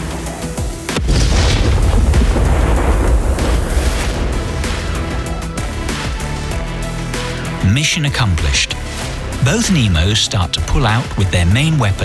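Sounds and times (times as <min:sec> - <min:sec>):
background music: 0:00.0 - 0:12.0
explosion boom with rumble: 0:01.0 - 0:05.6.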